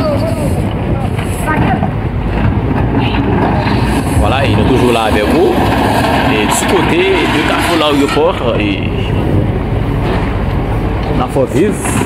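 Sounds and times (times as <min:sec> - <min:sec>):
diesel engine rumbling: 0:00.0 - 0:12.0
people talking and calling out: 0:00.0 - 0:12.0.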